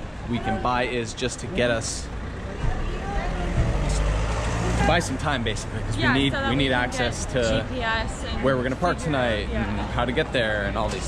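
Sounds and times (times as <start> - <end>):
vehicle passing with engine rumble: 0.0 - 11.0.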